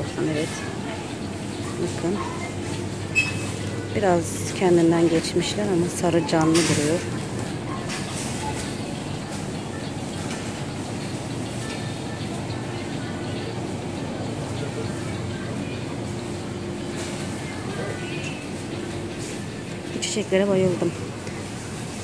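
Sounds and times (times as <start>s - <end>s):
constant low hum: 0.0s - 22.0s.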